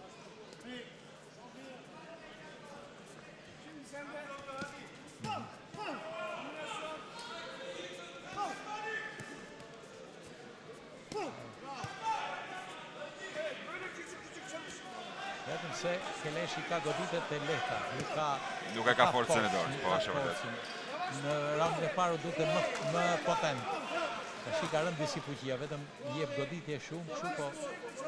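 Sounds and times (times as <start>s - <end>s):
voices calling out in hall: 0.0s - 28.0s.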